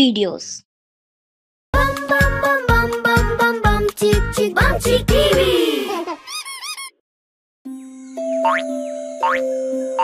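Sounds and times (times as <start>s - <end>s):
instrumental children's song: 1.8s - 6.9s.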